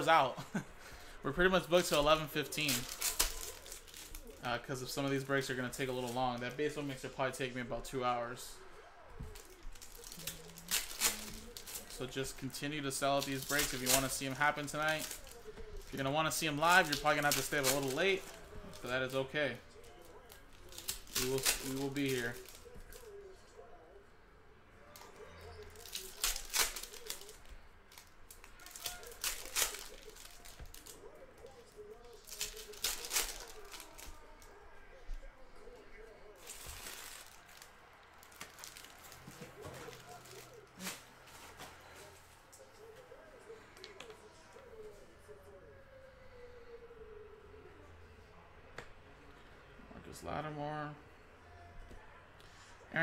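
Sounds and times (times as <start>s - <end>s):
cards rustling: 0.0s - 8.2s, 9.2s - 23.4s, 24.9s - 43.1s
foil packs tearing and crinkling: 1.4s - 4.4s, 9.4s - 19.5s, 20.2s - 23.1s, 25.5s - 34.5s, 36.4s - 41.1s.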